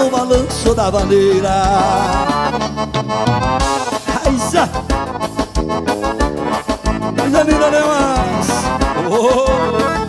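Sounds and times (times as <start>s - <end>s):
accordion chords: 0.0s - 10.0s
bass and drum beat: 0.0s - 10.0s.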